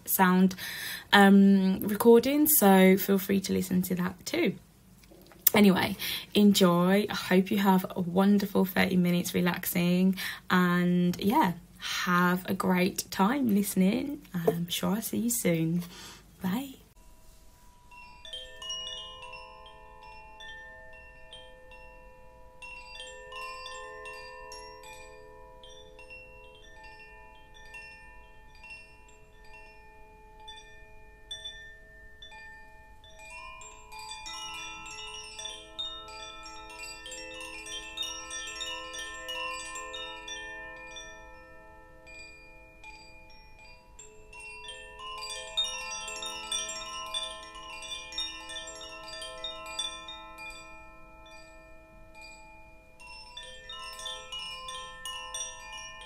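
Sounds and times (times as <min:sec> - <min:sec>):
bamboo wind chime tinkling: 0:15.9 - 0:56.0.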